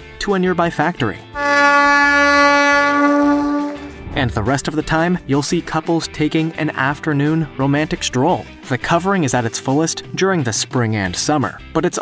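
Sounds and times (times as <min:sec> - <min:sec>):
locomotive horn blast: 0:01.4 - 0:04.2.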